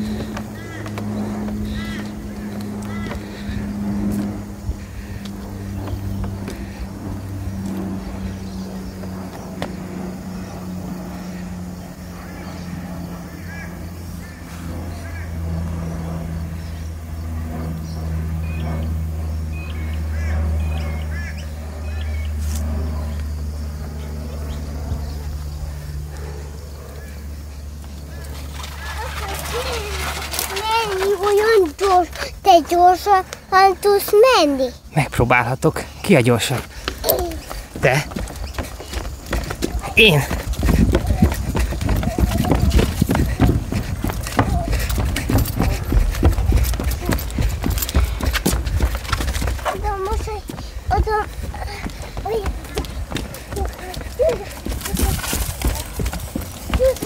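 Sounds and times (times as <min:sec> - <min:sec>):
motor humming: 0:00.0 - 0:33.5, 0:36.7 - 0:57.0.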